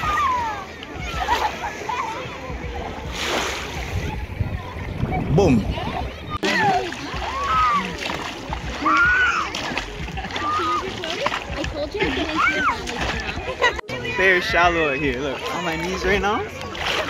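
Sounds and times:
children calling out: 0:00.0 - 0:02.5, 0:06.3 - 0:16.0
water splashing: 0:00.0 - 0:17.0.

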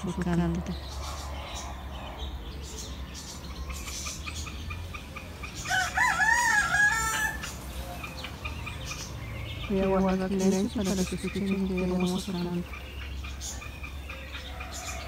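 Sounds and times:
small birds chirping: 0:00.0 - 0:15.0
rooster crowing: 0:05.7 - 0:07.6.

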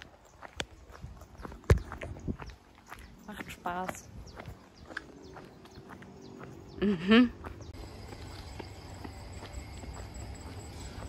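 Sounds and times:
footsteps on concrete: 0:00.0 - 0:06.8, 0:07.4 - 0:11.0.

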